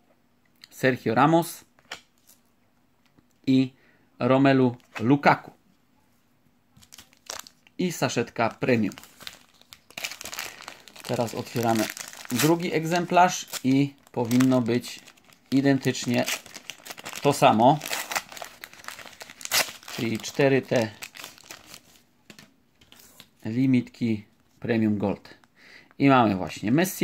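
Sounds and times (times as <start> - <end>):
plastic packaging crinkling: 6.8 - 7.7, 8.3 - 23.3.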